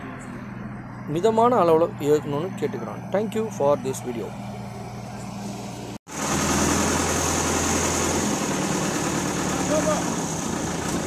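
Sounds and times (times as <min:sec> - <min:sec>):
crane engine running: 0:01.8 - 0:11.0.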